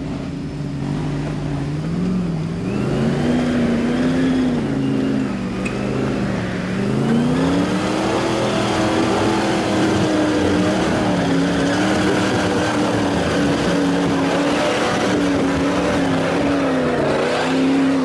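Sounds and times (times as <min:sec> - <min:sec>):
off-road vehicle engine revving: 0:00.0 - 0:18.0.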